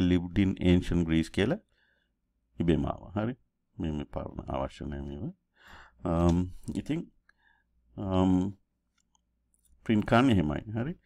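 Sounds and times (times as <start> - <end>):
man speaking: 0.0 - 1.7, 2.5 - 5.4, 6.0 - 7.2, 7.9 - 8.7, 9.8 - 11.0.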